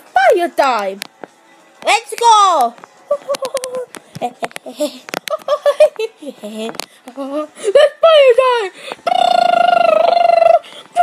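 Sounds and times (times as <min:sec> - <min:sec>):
child crying out: 0:09.0 - 0:11.0.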